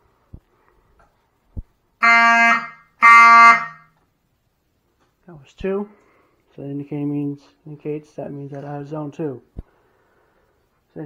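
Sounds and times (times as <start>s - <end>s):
fire alarm horn buzzy pulses: 2.0s - 4.0s.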